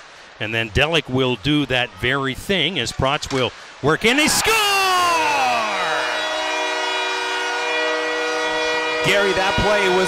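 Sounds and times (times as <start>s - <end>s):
goal horn blast: 5.1s - 10.0s.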